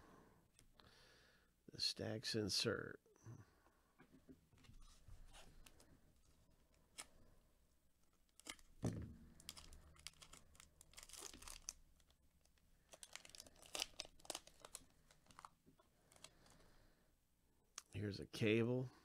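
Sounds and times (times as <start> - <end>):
wrapper tearing and crinkling: 8.3 - 8.7, 9.4 - 15.5.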